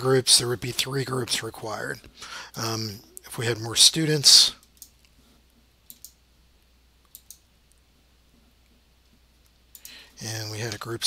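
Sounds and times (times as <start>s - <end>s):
computer mouse clicks: 4.6s - 5.2s, 5.8s - 6.2s, 7.0s - 7.8s, 9.4s - 10.0s.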